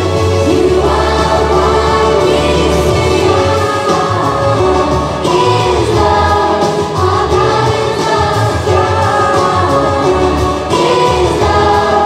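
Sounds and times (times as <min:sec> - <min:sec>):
choir singing worship song: 0:00.0 - 0:12.0
pulsing bass line: 0:00.0 - 0:12.0.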